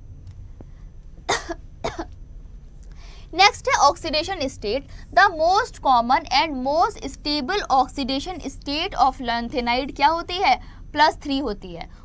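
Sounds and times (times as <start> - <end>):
woman coughing: 1.3 - 2.1.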